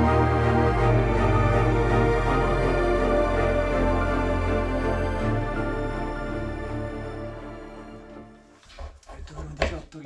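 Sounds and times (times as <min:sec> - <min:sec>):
background music: 0:00.0 - 0:08.8
man talking: 0:09.0 - 0:10.0.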